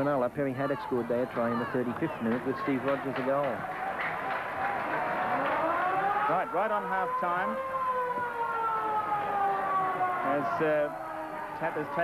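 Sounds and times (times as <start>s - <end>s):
siren long falling tone: 4.5s - 12.0s.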